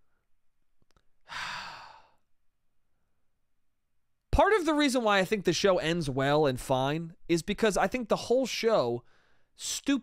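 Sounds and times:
man breathing out noisily: 1.2s - 2.2s.

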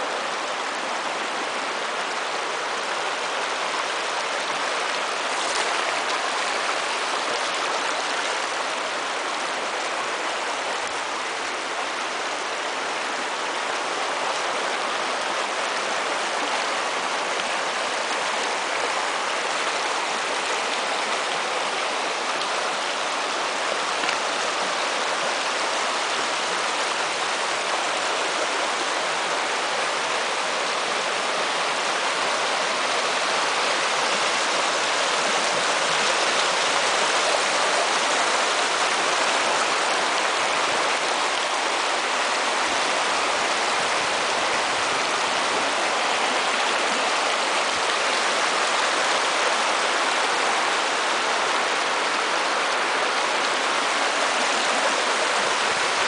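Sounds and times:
stream running over stones: 0.0s - 56.0s.

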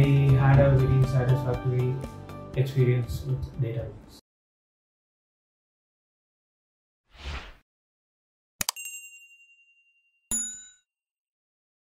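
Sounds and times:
bright bell ding: 8.7s - 10.9s
ringing chime: 8.7s - 10.9s.

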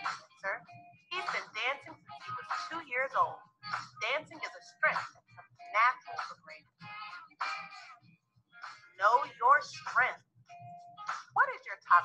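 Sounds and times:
person speaking: 9.0s - 10.2s.

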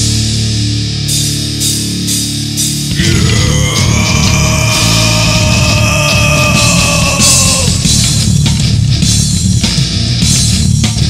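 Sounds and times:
heavy hardcore music: 0.0s - 11.0s.

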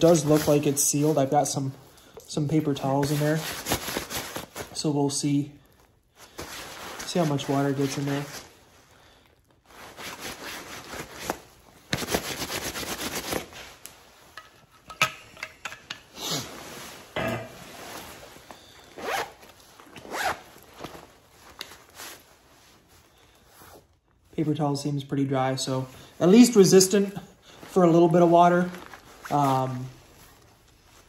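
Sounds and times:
fabric rustling and scraping: 6.1s - 8.9s, 9.5s - 24.3s, 27.5s - 31.0s
zipper being pulled open: 18.9s - 20.6s.

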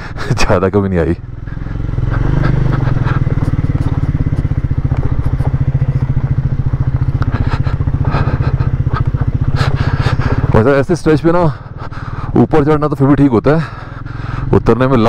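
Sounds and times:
motorcycle engine at low revs: 0.0s - 15.0s.

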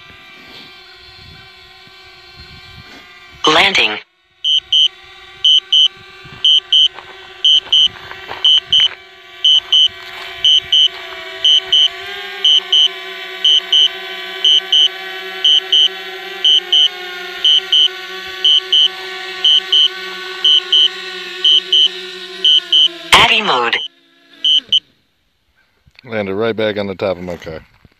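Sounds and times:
drone propellers humming: 0.0s - 25.5s
double beep: 7.5s - 8.9s, 22.5s - 23.9s, 24.5s - 24.8s.

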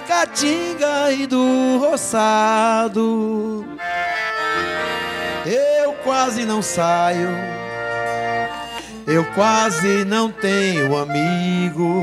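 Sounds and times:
man singing: 0.0s - 3.9s, 5.4s - 7.8s, 9.0s - 12.0s
accordion holding a chord: 0.0s - 12.0s.

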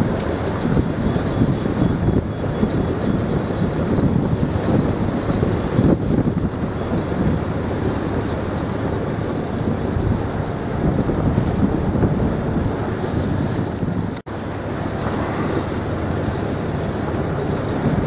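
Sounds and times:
sea water rushing past boat: 0.0s - 18.0s
wind buffeting microphone: 0.0s - 18.0s.

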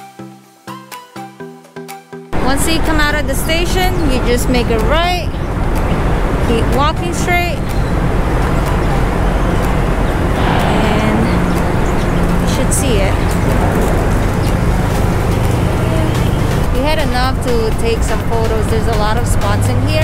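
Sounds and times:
city street traffic: 2.4s - 20.0s
people's voices: 2.4s - 20.0s.

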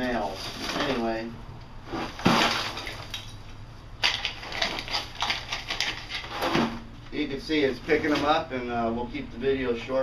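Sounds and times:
charcoal clattering in plastic tub: 1.9s - 3.2s, 4.0s - 6.9s.

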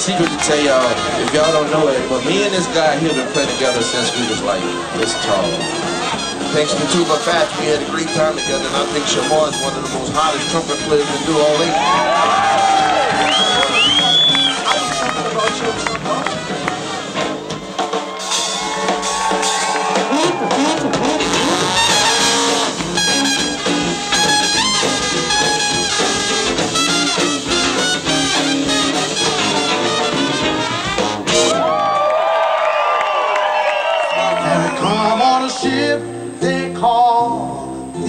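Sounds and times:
live jazz band: 0.0s - 31.8s
trombone: 0.0s - 31.8s
trumpet: 0.0s - 32.0s.

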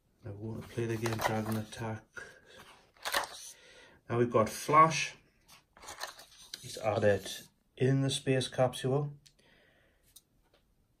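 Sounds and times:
paper pages turning: 0.5s - 3.5s, 5.5s - 7.5s.

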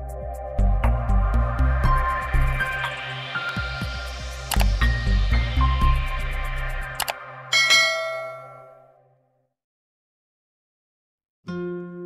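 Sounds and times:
short click: 4.5s - 4.7s
notification bell chime: 7.5s - 8.8s.

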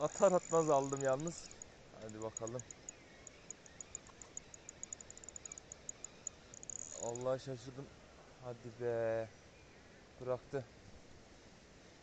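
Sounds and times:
crickets chirping: 0.0s - 8.1s
faint hiss: 0.0s - 12.0s.

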